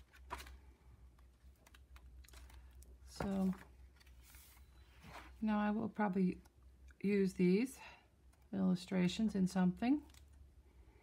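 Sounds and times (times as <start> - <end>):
book pages turning: 0.0 - 5.4
low steady hum: 0.0 - 11.0.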